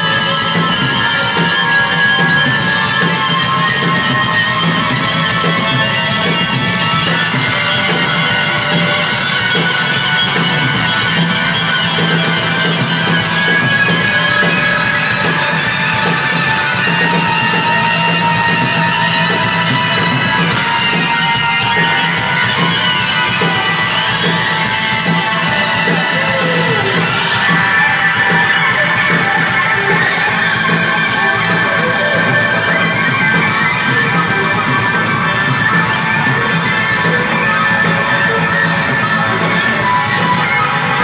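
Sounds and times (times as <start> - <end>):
drums: 0.0 - 41.0
keyboards: 0.0 - 41.0.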